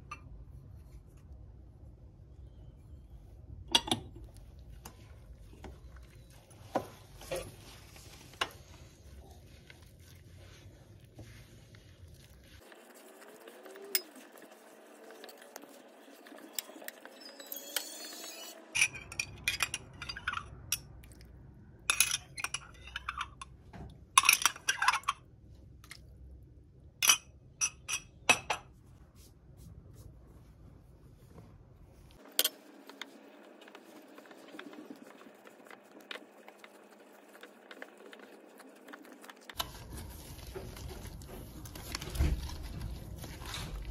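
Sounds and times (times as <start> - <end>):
dough squishing: 3.4 - 17.2, 28.8 - 43.9.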